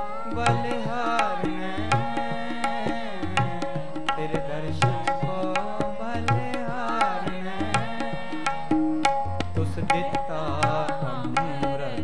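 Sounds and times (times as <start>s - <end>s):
tabla strokes: 0.0s - 12.0s.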